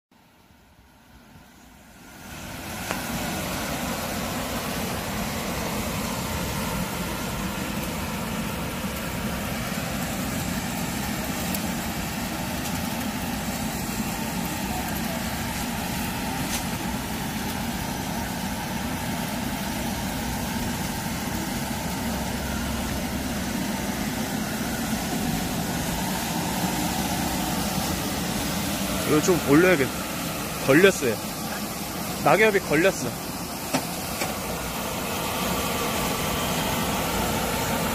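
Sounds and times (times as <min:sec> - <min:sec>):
sweeper whirring hum: 0:00.2 - 0:37.9.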